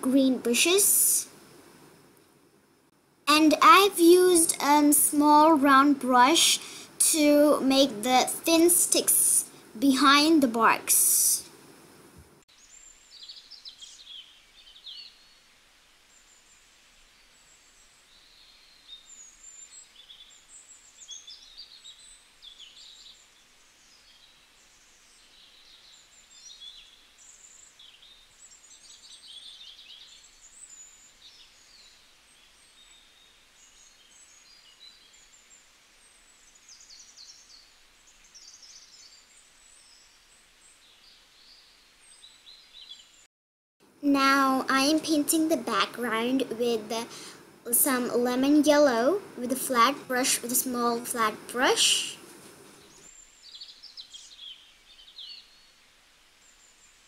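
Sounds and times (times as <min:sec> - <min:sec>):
small birds chirping: 0:00.0 - 0:01.9, 0:03.3 - 0:43.3, 0:44.2 - 0:57.0
low steady hiss: 0:00.0 - 0:57.0.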